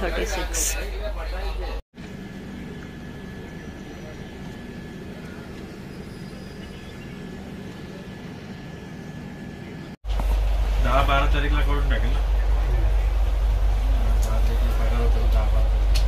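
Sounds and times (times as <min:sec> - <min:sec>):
steady low hum: 0:00.7 - 0:16.0
distant indistinct voices: 0:00.9 - 0:10.0, 0:10.7 - 0:15.9.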